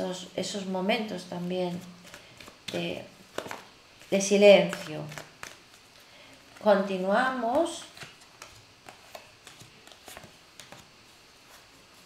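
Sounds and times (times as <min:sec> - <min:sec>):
cards clicking and tapping: 0:02.0 - 0:03.7, 0:04.6 - 0:05.7, 0:07.5 - 0:10.9.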